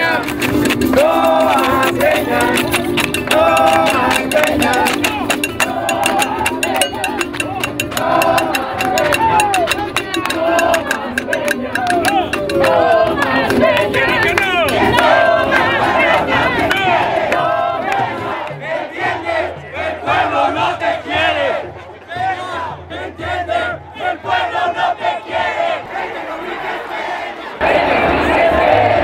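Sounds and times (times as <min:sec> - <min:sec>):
crowd of protesters shouting: 0:03.2 - 0:29.0.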